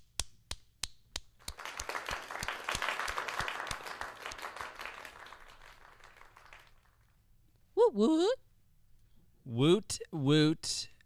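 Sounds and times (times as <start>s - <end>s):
hand clapping: 0.0s - 7.1s
group applause: 1.4s - 7.2s.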